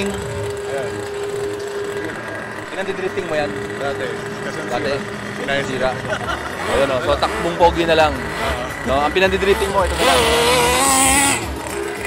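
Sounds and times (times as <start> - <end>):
toy car electric motor whining: 0.0 - 12.0.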